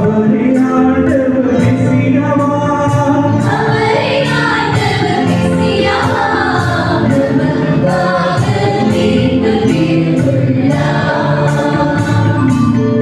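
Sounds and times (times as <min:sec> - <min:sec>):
man singing into a microphone: 0:00.0 - 0:03.5
electronic keyboard with steady beat: 0:00.0 - 0:13.0
choir singing a hymn: 0:02.9 - 0:13.0.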